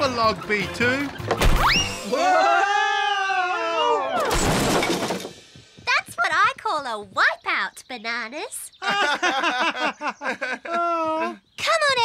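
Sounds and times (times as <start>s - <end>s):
cartoon crash clattering: 4.2s - 5.5s.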